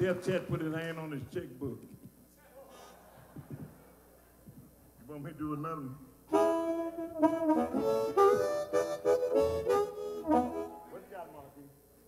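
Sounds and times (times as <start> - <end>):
blues harmonica: 6.3 - 11.1.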